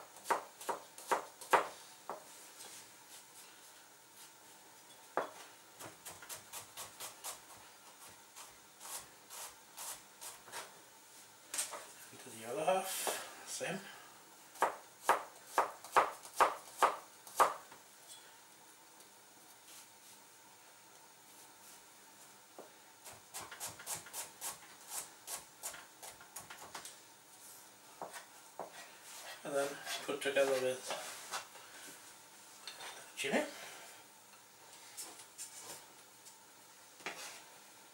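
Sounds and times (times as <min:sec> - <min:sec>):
knife chopping on cutting board: 0:00.2 - 0:02.2, 0:14.6 - 0:17.6.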